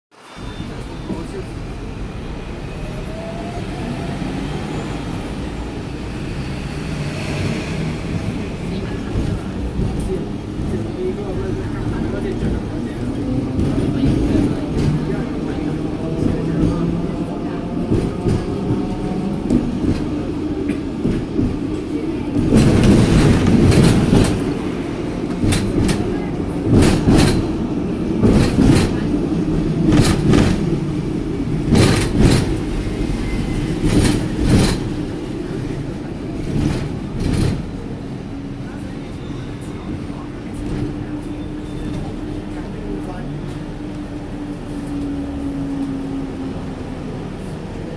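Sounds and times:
tram motor and wheels rumbling: 0:00.1 - 0:47.9
wheels clacking on rails: 0:00.2 - 0:47.9.

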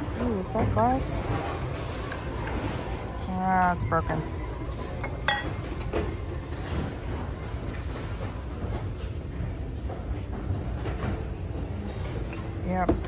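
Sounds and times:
dishes knocking: 0:05.0 - 0:05.9
glassware clinking: 0:05.0 - 0:06.0.

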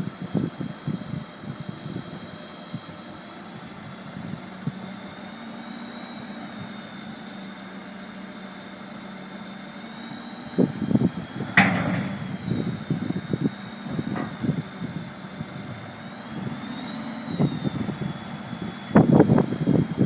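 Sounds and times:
hydraulic pump whine: 0:00.0 - 0:20.0
truck engine idling: 0:01.8 - 0:20.0
sharp metallic clank: 0:11.5 - 0:12.3.

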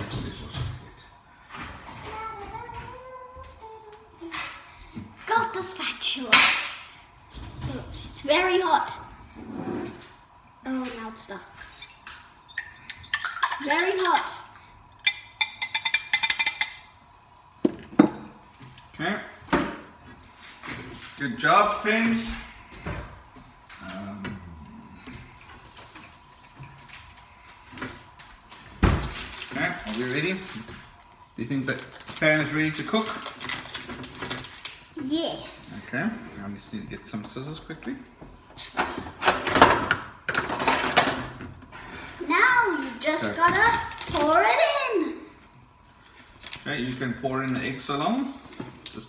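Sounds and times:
kitchen drawer sliding: 0:09.4 - 0:10.0
spatula tapping frying pan: 0:15.0 - 0:16.8.

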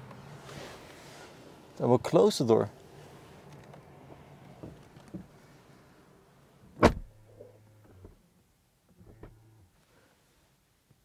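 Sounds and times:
car door thud: 0:06.8 - 0:07.2.

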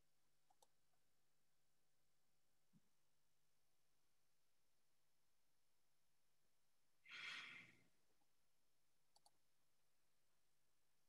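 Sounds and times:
breathy exhale: 0:07.1 - 0:07.8.

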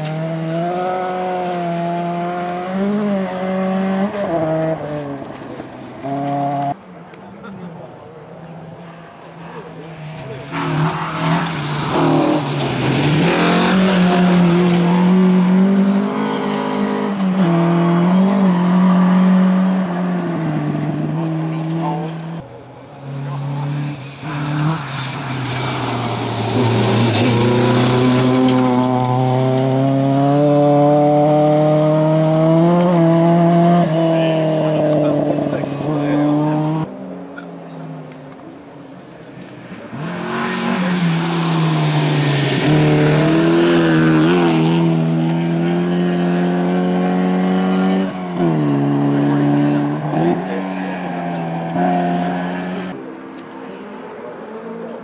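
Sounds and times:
rally car engine revving: 0:00.0 - 0:06.8, 0:08.9 - 0:38.6, 0:39.2 - 0:55.0.

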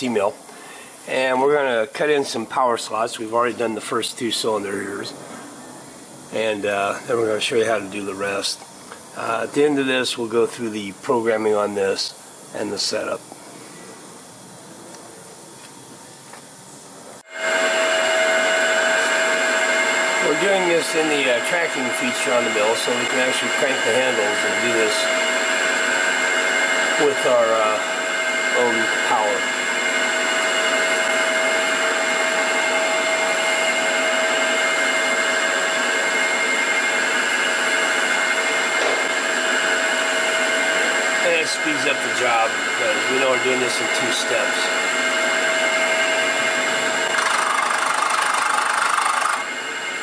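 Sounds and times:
milling machine spindle whine: 0:00.0 - 0:50.0.

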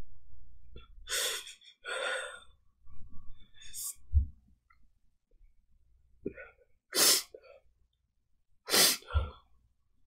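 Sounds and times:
woman blowing her nose: 0:06.9 - 0:07.4, 0:08.7 - 0:09.3.

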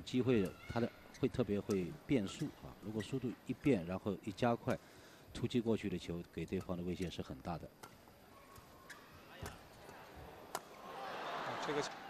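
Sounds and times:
faint arena background: 0:00.0 - 0:12.0
racket striking shuttlecock: 0:01.5 - 0:02.5, 0:07.8 - 0:10.8.

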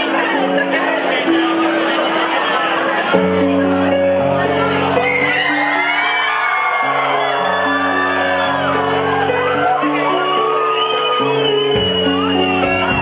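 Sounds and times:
keyboard chords: 0:00.0 - 0:13.0
people whooping and shouting: 0:04.6 - 0:13.0
live rock band playing: 0:08.0 - 0:13.0.

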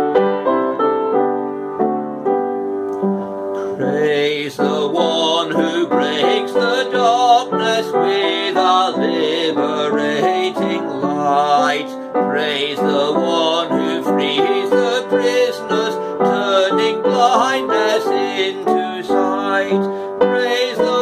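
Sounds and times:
piano playing chords: 0:00.0 - 0:21.0
man singing: 0:03.7 - 0:21.0.

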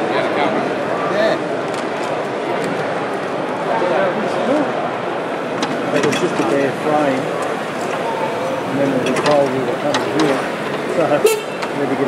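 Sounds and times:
people talking: 0:05.8 - 0:12.0.

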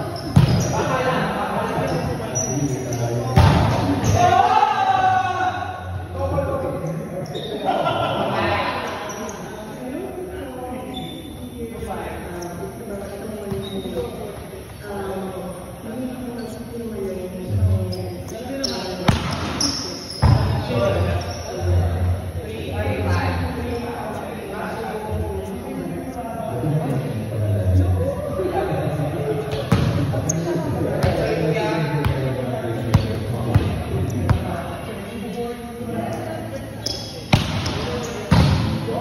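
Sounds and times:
background voices in echoing room: 0:00.0 - 0:39.0
ball hitting hard: 0:03.4 - 0:03.8.

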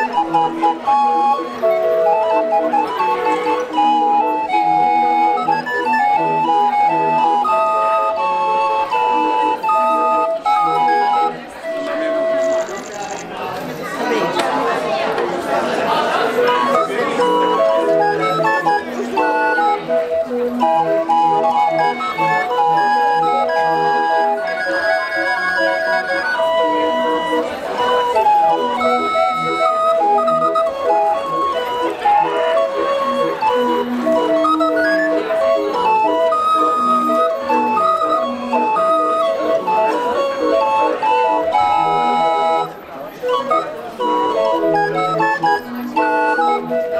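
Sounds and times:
barrel organ playing: 0:00.0 - 0:46.9.

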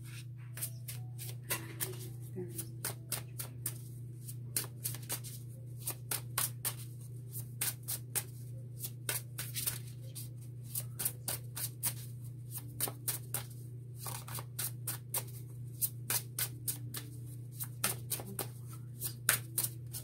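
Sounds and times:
cards being shuffled: 0:00.0 - 0:20.0.

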